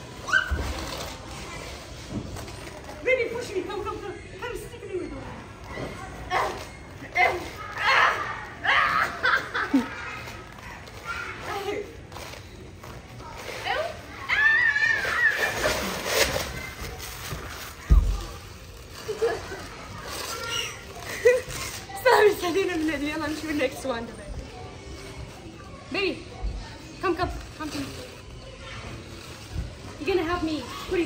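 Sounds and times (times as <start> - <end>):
people laughing: 8.8 - 10.0.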